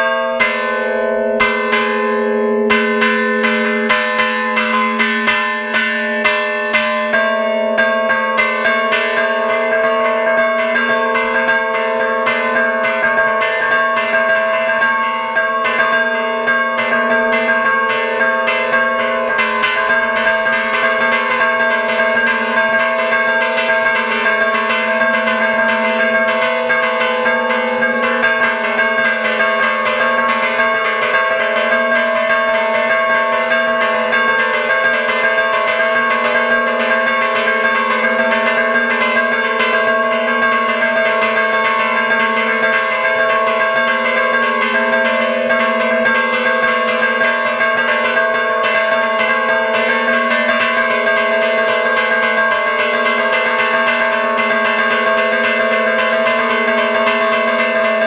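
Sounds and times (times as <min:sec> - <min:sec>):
church bells ringing rapidly: 0:00.0 - 0:58.0.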